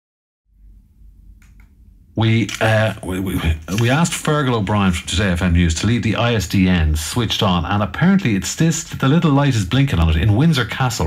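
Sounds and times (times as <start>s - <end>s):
faint low hum: 0.6s - 11.0s
soft clicks: 1.4s - 1.8s.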